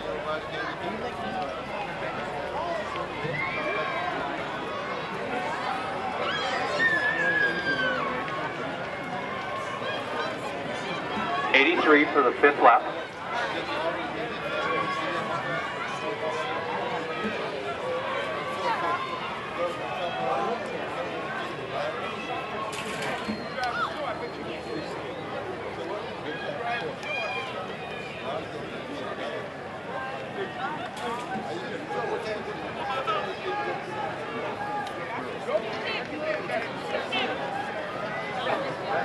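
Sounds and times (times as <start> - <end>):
crowd chattering: 0.0 - 39.0.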